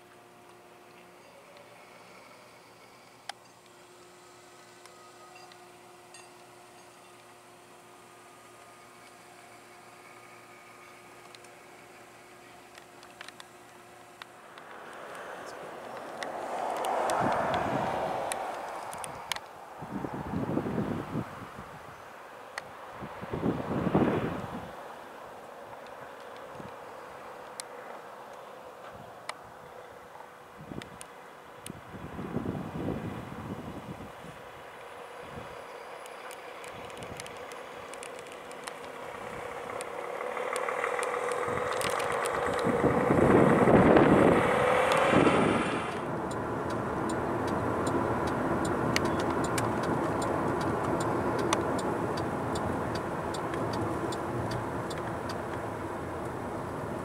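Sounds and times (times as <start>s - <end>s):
road rumble: 0.0s - 57.0s
vehicle passing close by: 13.8s - 21.5s, 37.5s - 57.0s
wind buffeting microphone: 16.5s - 22.0s, 23.0s - 24.8s, 31.7s - 34.5s, 40.7s - 57.0s.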